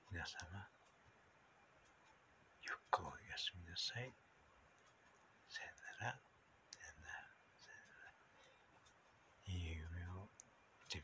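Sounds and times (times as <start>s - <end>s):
man whispering: 0.0s - 0.8s, 2.6s - 4.2s, 5.4s - 8.7s, 9.4s - 11.0s
quiet murmured sounds: 0.0s - 11.0s.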